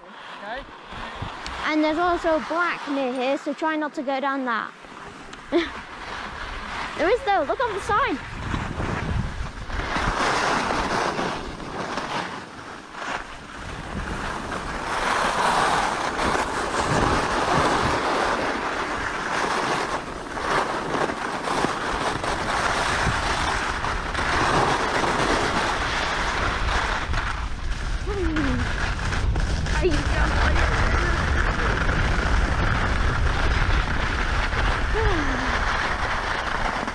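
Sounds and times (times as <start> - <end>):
skis scraping over packed snow: 0.0 - 36.9
wind buffeting microphone: 5.2 - 36.9.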